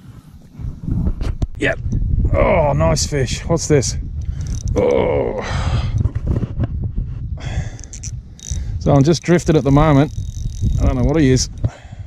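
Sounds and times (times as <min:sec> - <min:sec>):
wind rumbling on microphone: 0:00.0 - 0:12.0
fishing reel clicks and rasp: 0:04.2 - 0:05.0, 0:07.6 - 0:11.7.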